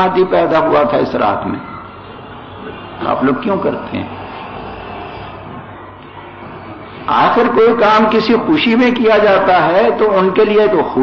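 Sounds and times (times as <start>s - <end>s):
man speaking: 3.0s - 4.2s, 7.1s - 11.0s.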